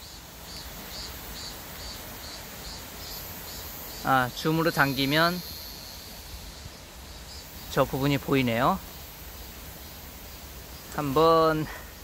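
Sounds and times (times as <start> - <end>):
faint outdoor background noise: 0.0 - 12.0
insects chirping: 0.0 - 12.0.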